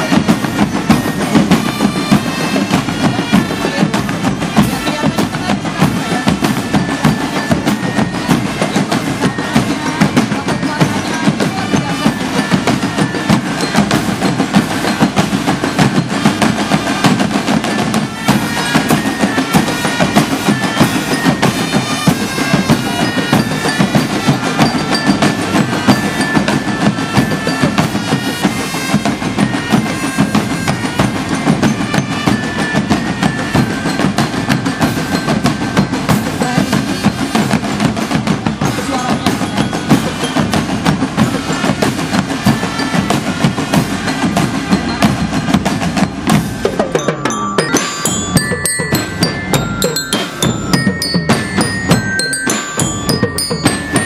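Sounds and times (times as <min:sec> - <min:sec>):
bass drum beats: 0:00.0 - 0:54.0
snare drum rolls: 0:00.0 - 0:54.0
melodic notes: 0:43.8 - 0:54.0.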